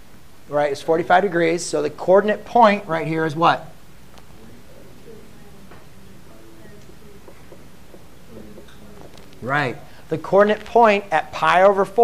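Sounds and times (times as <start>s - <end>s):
faint distant voices: 3.6s - 11.0s
marker tapping on whiteboard: 6.8s - 9.4s.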